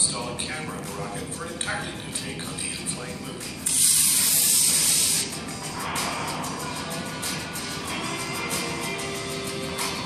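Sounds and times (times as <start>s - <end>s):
background music: 0.0s - 10.0s
rocket motor hissing: 3.6s - 5.4s.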